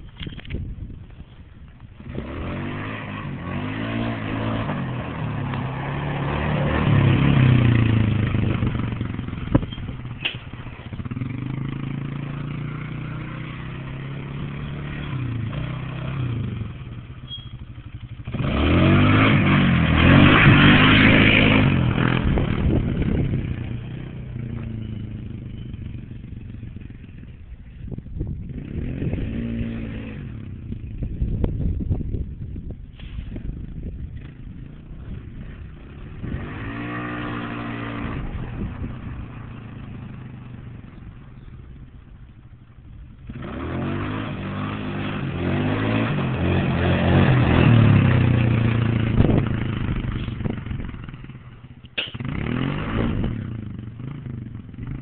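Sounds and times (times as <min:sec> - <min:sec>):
atv engine revving: 0:01.8 - 0:32.2, 0:33.0 - 0:55.0.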